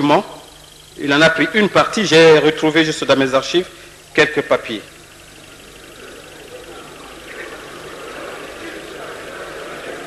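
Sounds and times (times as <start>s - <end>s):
videotape hiss and hum: 0.0s - 10.0s.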